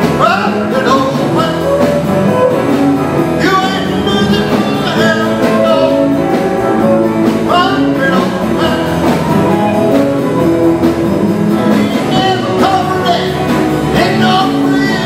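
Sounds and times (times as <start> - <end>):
person singing: 0.0 - 10.2, 11.6 - 15.0
live rock and roll band: 0.0 - 15.0.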